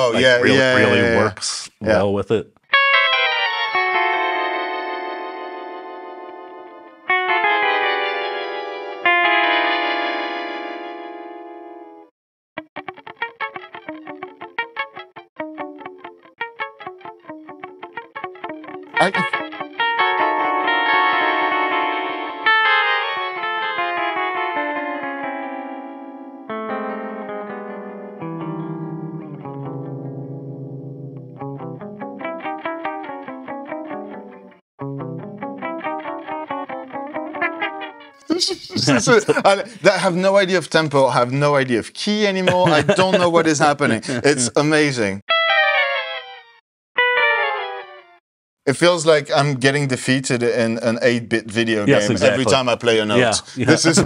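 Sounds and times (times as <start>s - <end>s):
electric guitar with pitch-shifting delay: 2.8s - 12.0s, 12.8s - 38.2s, 45.5s - 48.2s.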